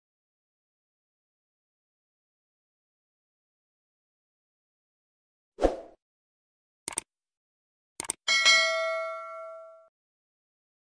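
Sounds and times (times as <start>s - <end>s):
double mouse click: 6.9s - 7.1s, 8.0s - 8.2s
bright bell ding: 8.3s - 9.9s.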